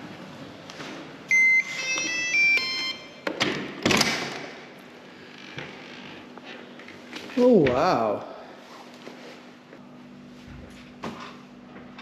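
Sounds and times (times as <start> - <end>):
door lock beeping tune: 1.3 - 3.2.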